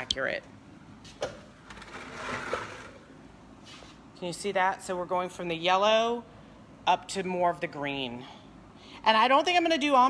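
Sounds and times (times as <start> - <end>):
soft rustle of handling: 3.6 - 4.1.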